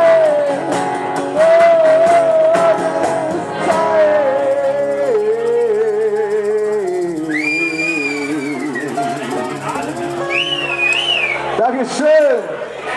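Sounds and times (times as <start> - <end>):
man singing: 0.0 - 10.4
acoustic guitars: 0.0 - 12.9
high whistle: 7.2 - 9.0, 10.2 - 11.6.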